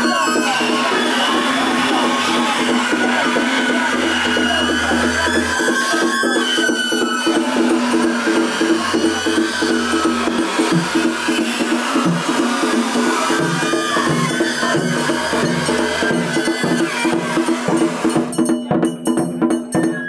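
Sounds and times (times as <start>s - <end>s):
high flute melody: 0.0s - 18.4s, 19.7s - 20.0s
drums and percussion beat: 0.0s - 20.0s.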